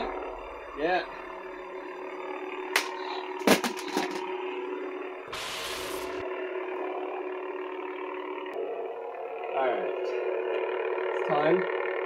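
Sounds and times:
lightsaber humming: 0:00.0 - 0:12.0
hiss: 0:05.3 - 0:06.2.

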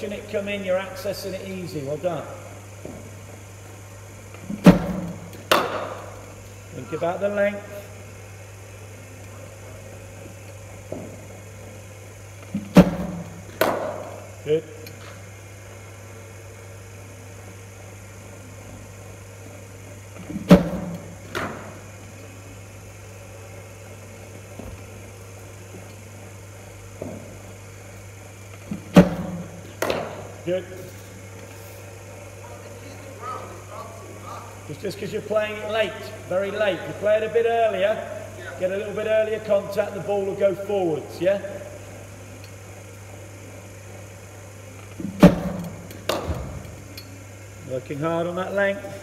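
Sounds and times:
steady low hum: 0:00.0 - 0:49.0
cricket bat hitting ball: 0:04.6 - 0:06.0, 0:20.5 - 0:21.7, 0:28.9 - 0:30.2, 0:45.2 - 0:46.6.

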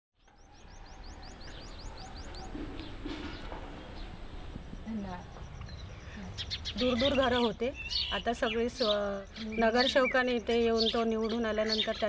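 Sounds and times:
birds chirping: 0:00.2 - 0:12.0.

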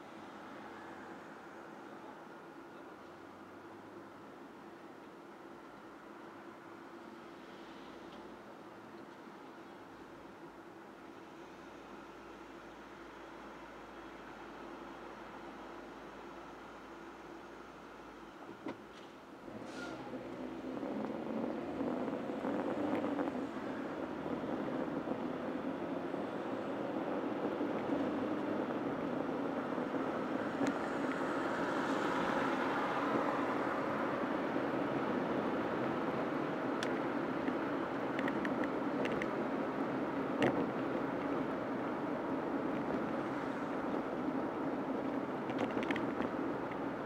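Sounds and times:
car engine and tyre noise: 0:00.0 - 0:47.0.

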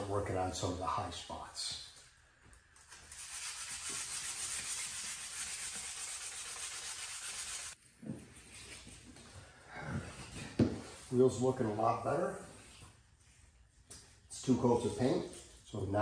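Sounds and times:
sandpaper rubbing on metal: 0:02.9 - 0:07.8.

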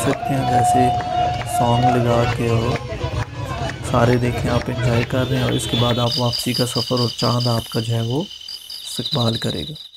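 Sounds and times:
crickets chirping: 0:04.7 - 0:09.9.

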